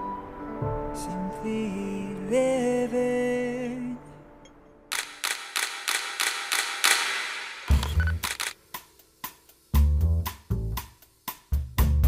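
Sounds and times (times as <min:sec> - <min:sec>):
camera shutter clicks: 0:04.9 - 0:08.6
band music with bass and drums: 0:09.7 - 0:12.0.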